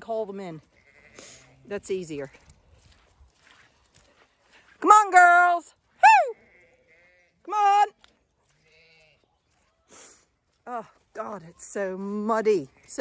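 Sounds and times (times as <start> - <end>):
woman calling loudly: 4.8 - 6.4, 7.4 - 8.0.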